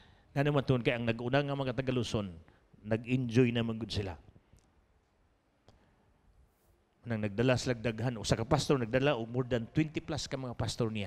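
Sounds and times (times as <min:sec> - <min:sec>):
man speaking: 0:00.4 - 0:04.2, 0:07.0 - 0:11.0.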